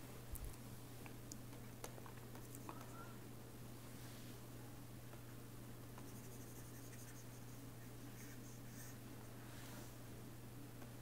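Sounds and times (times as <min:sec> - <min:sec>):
low electrical hum: 0:00.0 - 0:11.0
stylus scratching on tablet: 0:06.0 - 0:09.0.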